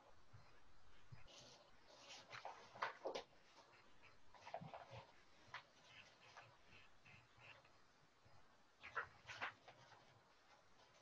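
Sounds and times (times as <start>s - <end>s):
pencil scratching on paper: 0.0s - 7.8s.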